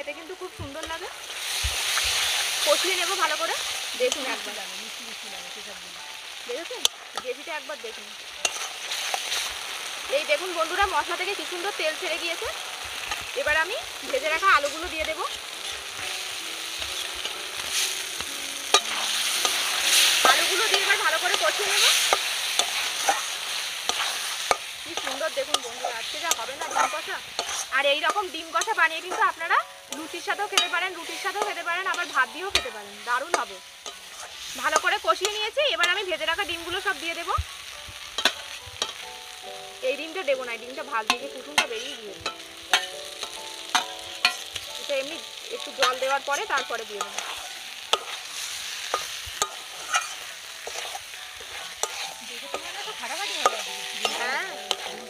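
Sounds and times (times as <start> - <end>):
food sizzling in a pan: 0.0 - 55.0
spatula clinking on pan: 18.7 - 19.6, 29.9 - 36.0, 38.2 - 39.0, 48.9 - 55.0.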